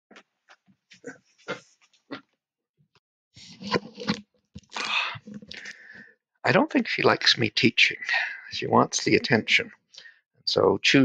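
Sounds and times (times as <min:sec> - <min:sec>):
headset rustling against microphone: 0:03.4 - 0:05.8.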